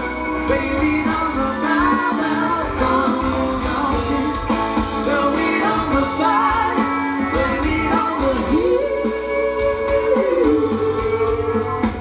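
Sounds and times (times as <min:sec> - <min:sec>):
live rock band playing: 0:00.0 - 0:12.0
person singing: 0:00.0 - 0:12.0.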